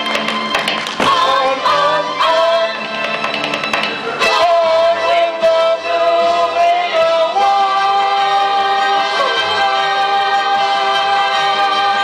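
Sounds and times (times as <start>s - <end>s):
backing track: 0.0s - 12.0s.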